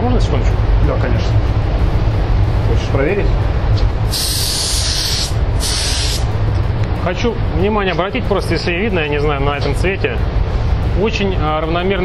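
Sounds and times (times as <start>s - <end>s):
steady low rumble: 0.0s - 12.0s
paint spray gun hissing: 4.1s - 6.3s.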